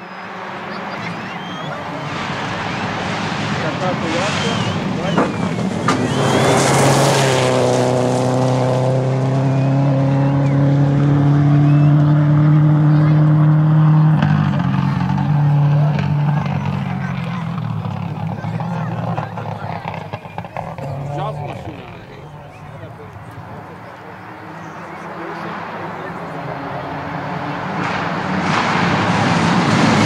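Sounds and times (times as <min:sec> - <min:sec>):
rally car engine at full throttle: 0:00.0 - 0:30.0
tyres on gravel: 0:14.2 - 0:27.0.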